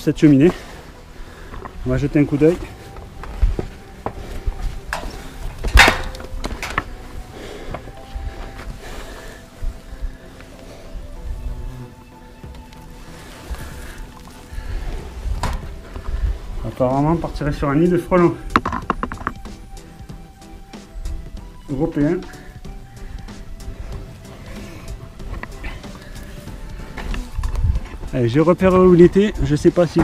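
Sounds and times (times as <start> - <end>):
footsteps on metal roof: 1.4 - 9.2, 15.0 - 17.5
wind rumble on microphone: 14.5 - 17.6, 26.7 - 28.1.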